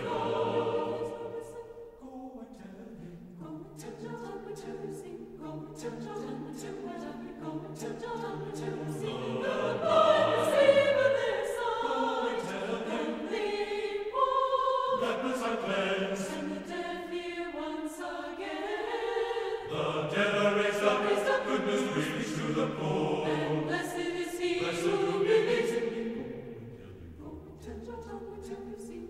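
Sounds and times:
choir singing in parts: 0.0 - 29.0.

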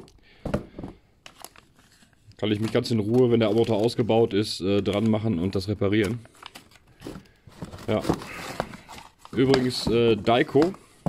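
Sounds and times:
plastic packaging crinkling: 1.2 - 10.9.

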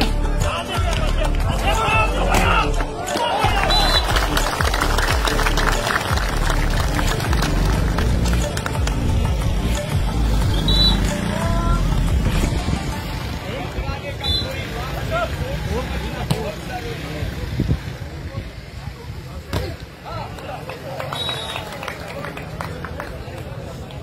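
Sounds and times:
crowd din: 0.0 - 24.0
crowd shouts: 1.5 - 4.4.

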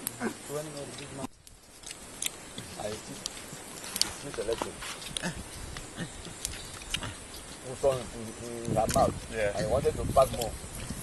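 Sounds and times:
sharp cracks and clicks: 1.4 - 2.4
chimpanzee low grunts: 5.1 - 8.1.

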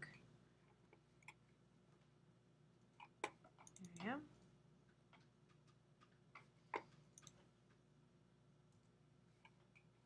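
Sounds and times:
computer mouse clicks: 3.0 - 4.2, 5.2 - 7.5.

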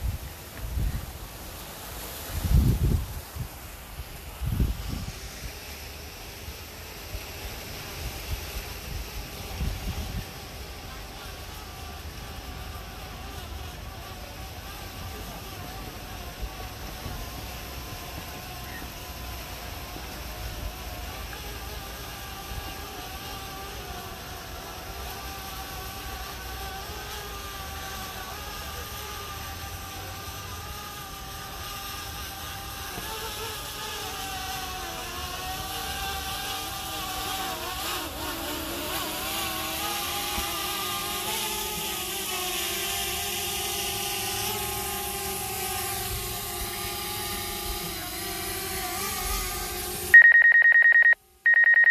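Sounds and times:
drone propellers whining: 0.0 - 51.9
pulsing electronic ringing tone: 50.1 - 51.9.

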